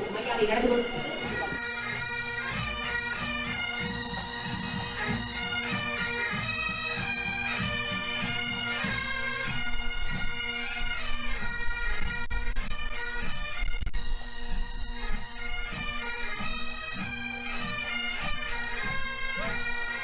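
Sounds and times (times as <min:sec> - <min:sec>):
bagpipe melody over drone: 0:00.0 - 0:20.0.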